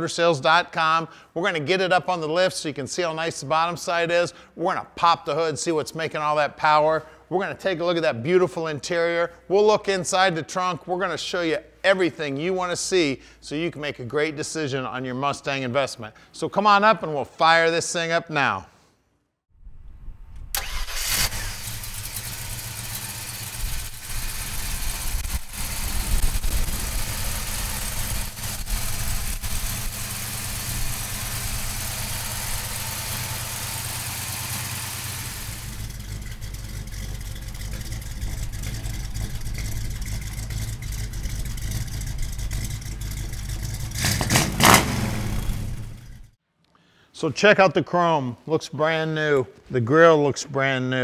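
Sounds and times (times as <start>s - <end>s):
car engine starting and idling: 20.5s - 46.4s.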